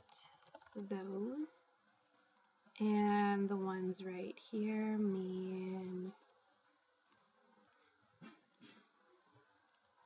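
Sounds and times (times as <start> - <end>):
computer mouse clicks: 0.0 - 0.9, 7.1 - 8.9, 9.6 - 10.0.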